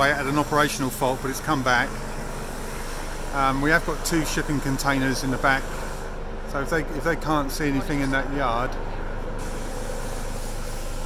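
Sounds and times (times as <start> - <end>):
helicopter rotor and engine noise: 0.0 - 11.0.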